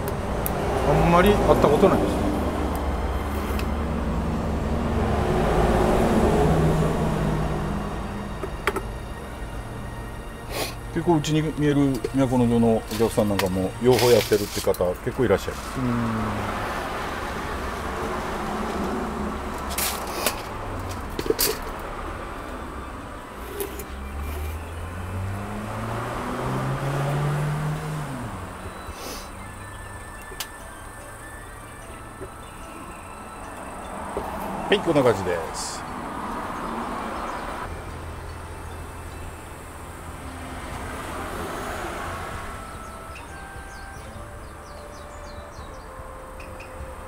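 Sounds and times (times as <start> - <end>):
vehicle engine running: 0.0 - 45.6.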